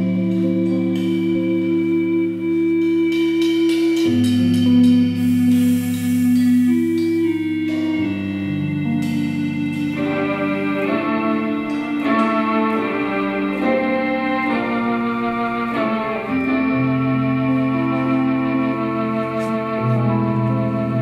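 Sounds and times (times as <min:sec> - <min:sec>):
band playing bossa nova: 0:00.0 - 0:21.0
light cymbal strokes: 0:00.0 - 0:21.0.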